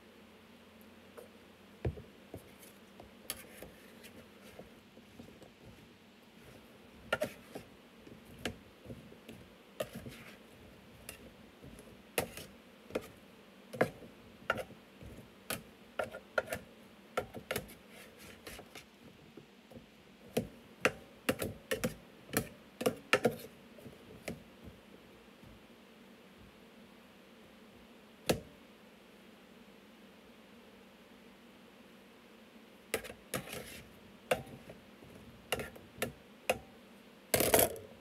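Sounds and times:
metal scraper chopping on pan: 7.1s - 7.6s, 9.8s - 10.3s, 11.0s - 13.1s, 13.8s - 14.7s, 15.5s - 18.8s, 20.4s - 23.5s, 33.0s - 34.7s, 35.5s - 36.7s
metal scraper scraping baking dish: 7.1s - 7.6s, 9.8s - 10.4s, 12.2s - 13.1s, 33.0s - 33.9s, 35.5s - 35.8s.

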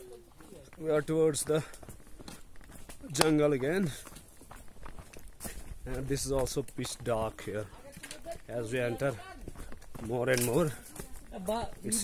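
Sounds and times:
footsteps on dirt path: 0.0s - 12.0s
man talking: 0.8s - 1.7s, 3.0s - 4.0s, 5.8s - 7.7s, 8.5s - 9.2s, 10.0s - 10.8s.

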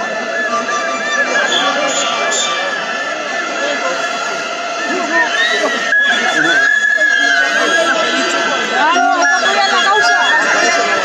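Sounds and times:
crowd voices and shouting: 0.0s - 11.0s
protesters blowing whistles: 0.0s - 11.0s.

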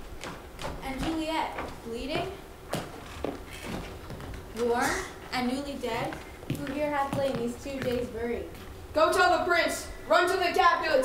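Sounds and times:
footsteps on wooden stage: 0.0s - 8.8s
person speaking: 0.8s - 2.5s, 4.5s - 11.0s.

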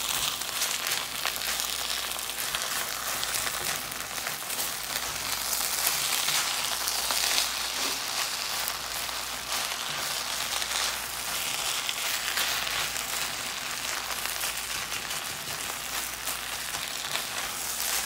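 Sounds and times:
rice sizzling in a pan: 0.0s - 18.0s.

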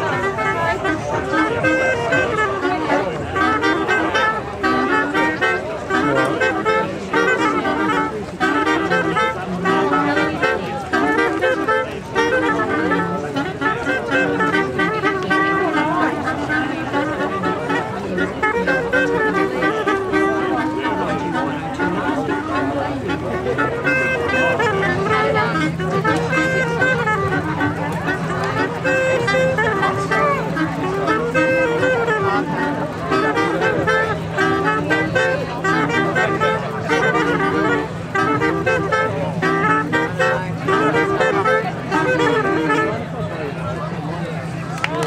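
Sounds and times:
wind instruments playing tune: 0.0s - 45.0s.

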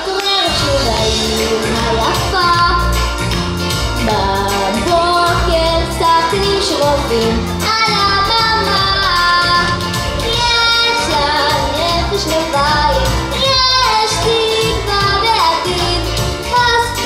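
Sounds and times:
girl singing into a microphone: 0.0s - 3.0s, 4.0s - 17.0s
instrumental accompaniment: 0.0s - 17.0s.

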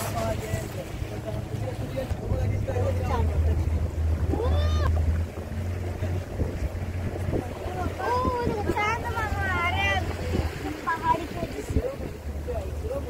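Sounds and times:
motorboat engine droning: 0.0s - 13.0s
water rushing past: 0.0s - 13.0s.

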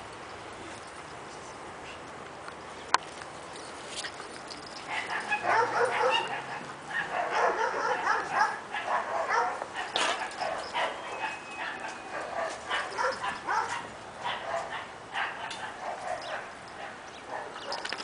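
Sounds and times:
puppies yipping and barking: 3.6s - 18.0s.

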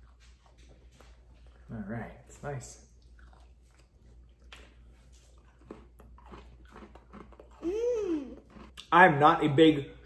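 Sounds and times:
chewing cookies: 0.0s - 2.2s, 2.8s - 8.9s.

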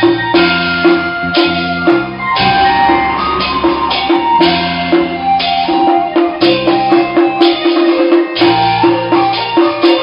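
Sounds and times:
sustained melody notes: 0.0s - 9.9s
drums and percussion beat: 0.0s - 10.0s.

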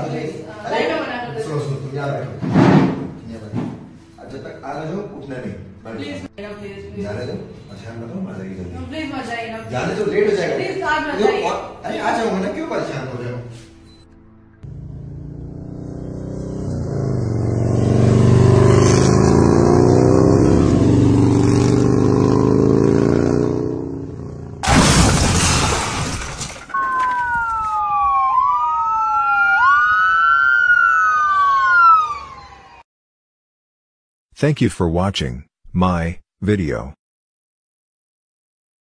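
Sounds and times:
motorcycle engine accelerating: 14.6s - 24.6s
loud crash: 24.6s - 27.4s
emergency vehicle siren wailing: 26.7s - 32.9s.

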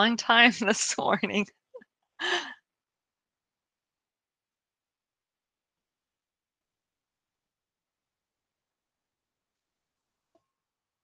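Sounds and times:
woman sighing: 2.2s - 2.6s.

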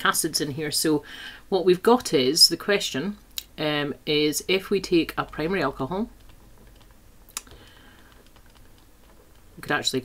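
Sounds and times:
stylus tapping on touchscreen: 6.2s - 9.5s.

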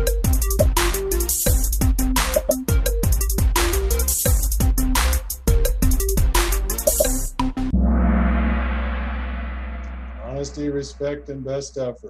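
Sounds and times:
gong ringing: 7.7s - 11.4s.

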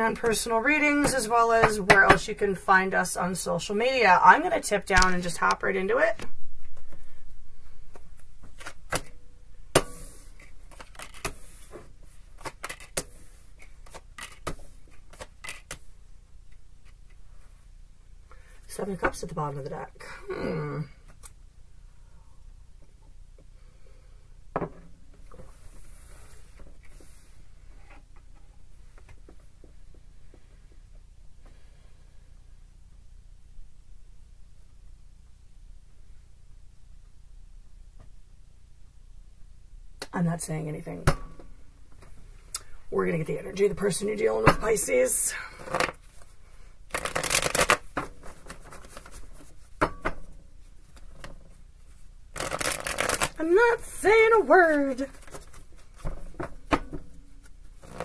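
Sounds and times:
cards being shuffled: 7.9s - 9.1s, 10.4s - 15.9s, 46.9s - 49.7s, 51.0s - 56.2s.

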